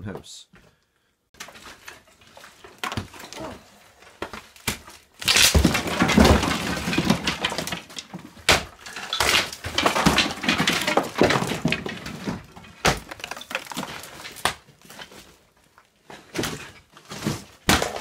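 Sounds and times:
wooden lath cracking and knocking: 1.3s - 18.0s
plaster crumbling and falling: 1.4s - 18.0s.

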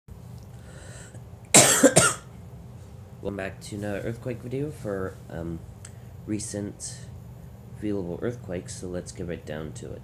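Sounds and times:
faint steady hum: 0.1s - 10.0s
person coughing: 1.6s - 2.3s.

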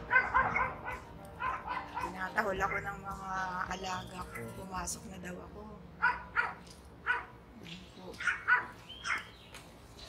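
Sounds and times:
dogs barking: 0.0s - 3.0s, 4.2s - 4.6s, 6.0s - 7.4s, 8.1s - 9.4s.

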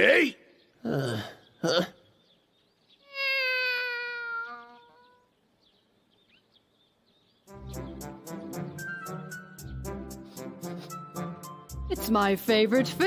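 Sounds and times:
cartoon cat meowing: 3.1s - 5.2s
brassy background music: 7.5s - 13.0s.

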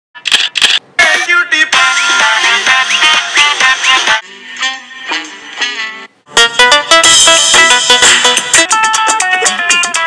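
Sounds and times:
phone camera shutter clicks: 0.2s - 0.8s
music: 1.0s - 10.0s.

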